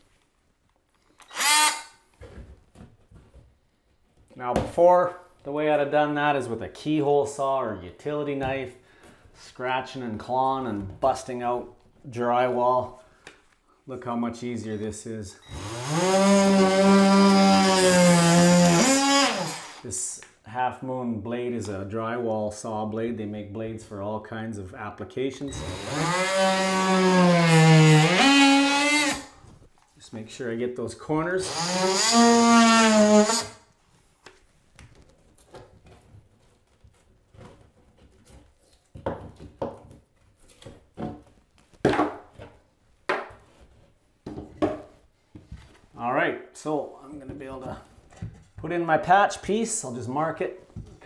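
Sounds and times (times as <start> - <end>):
multi-tool cutting drywall: 1.2 - 2.0, 15.4 - 19.9, 25.5 - 29.4, 31.2 - 33.6
oscillating multi-tool buzzing: 1.3 - 2.0
drywall knocking and crunching: 35.2 - 43.5.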